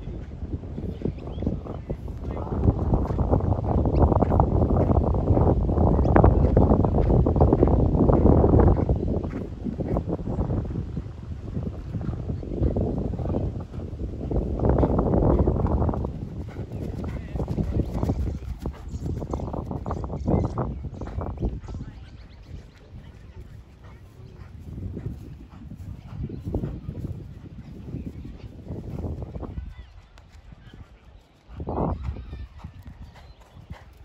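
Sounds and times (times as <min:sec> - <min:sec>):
horse hoofbeats on grass: 0:12.6 - 0:20.0.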